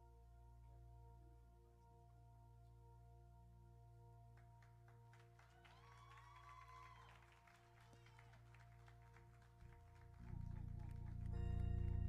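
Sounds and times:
low held music chords: 0:09.6 - 0:12.0.

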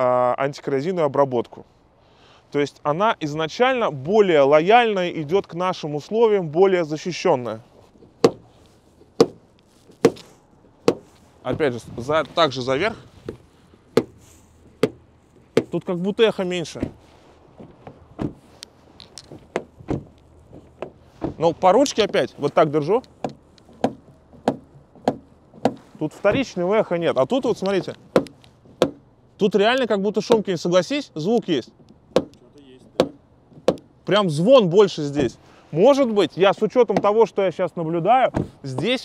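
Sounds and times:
car door handle snapping back: 0:08.2 - 0:08.5, 0:09.2 - 0:11.7, 0:13.3 - 0:14.2, 0:14.8 - 0:15.8, 0:17.6 - 0:18.4, 0:19.2 - 0:21.4, 0:23.1 - 0:26.5, 0:28.0 - 0:29.0, 0:31.9 - 0:33.9.

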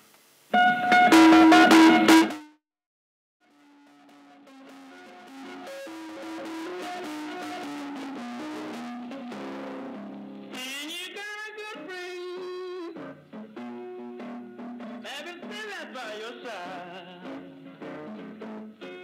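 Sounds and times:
blues guitar playing: 0:00.6 - 0:02.4, 0:04.1 - 0:16.0.

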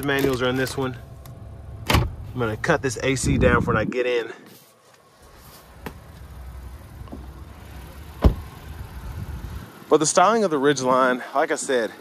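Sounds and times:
truck door shutting thump: 0:01.8 - 0:02.2, 0:08.2 - 0:08.5.

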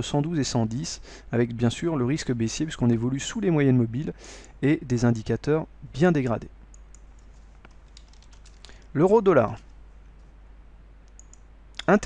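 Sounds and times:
low steady hiss: 0:00.0 - 0:12.0
computer keyboard clicks: 0:06.7 - 0:08.9, 0:11.1 - 0:11.4.

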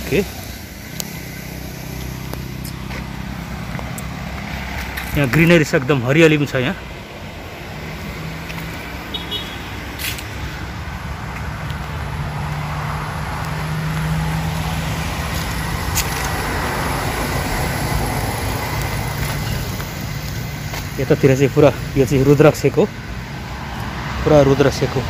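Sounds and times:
vehicle engine humming: 0:00.0 - 0:25.0.

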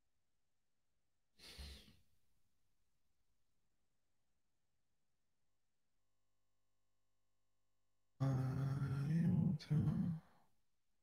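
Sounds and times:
person sighing exhale: 0:01.4 - 0:01.9.

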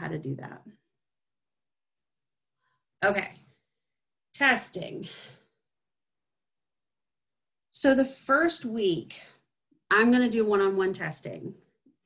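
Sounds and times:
woman speaking: 0:00.0 - 0:00.8, 0:03.0 - 0:03.5, 0:04.3 - 0:05.3, 0:07.7 - 0:11.7.

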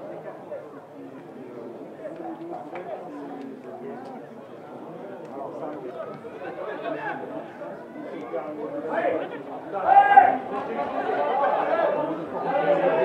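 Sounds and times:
men calling and shouting: 0:01.3 - 0:13.0.

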